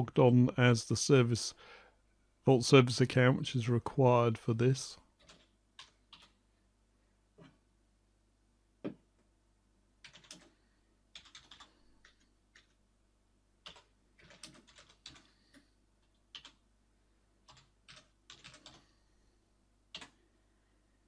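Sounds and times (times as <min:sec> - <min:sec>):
keyboard typing: 0:05.2 - 0:06.4, 0:10.0 - 0:12.8, 0:13.6 - 0:16.6, 0:17.4 - 0:18.8, 0:19.9 - 0:20.2.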